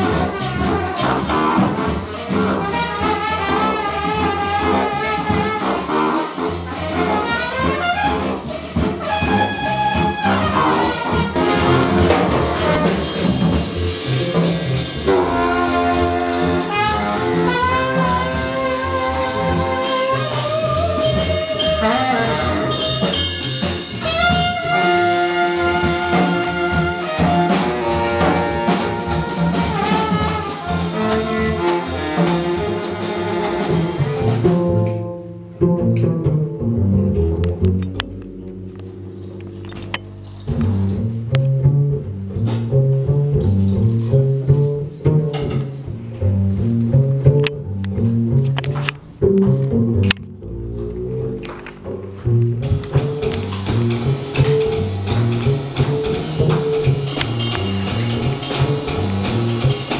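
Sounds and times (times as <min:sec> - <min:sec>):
congas: 0:00.0 - 0:34.6, 0:48.7 - 0:59.9
trumpet: 0:00.0 - 0:35.1, 0:52.2 - 0:59.9
baritone saxophone: 0:00.0 - 0:37.8
drum kit: 0:00.0 - 0:59.9
upright bass: 0:00.0 - 0:59.9.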